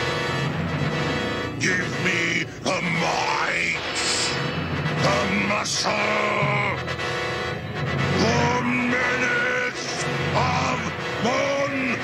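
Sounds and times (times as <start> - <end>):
dramatic cartoon music: 0.0 - 12.0.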